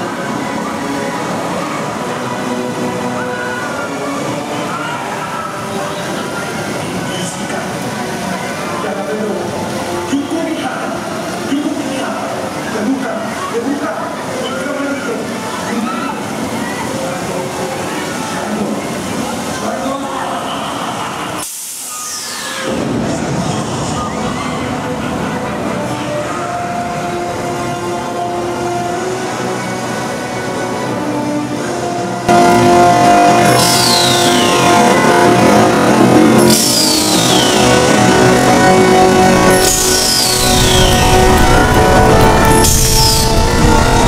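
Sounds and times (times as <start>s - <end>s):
low churning noise: 0.0s - 44.0s
voices: 0.0s - 44.0s
loud hiss: 21.4s - 23.9s, 33.2s - 44.0s
amusement ride music over loudspeakers: 22.7s - 44.0s
whistle falling in pitch: 33.5s - 34.9s.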